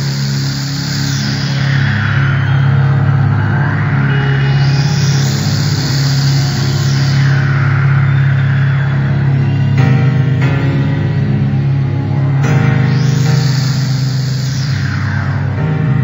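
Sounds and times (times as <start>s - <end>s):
low synthesizer bass note: 0.0s - 16.0s
sweeping filtered noise: 0.0s - 16.0s.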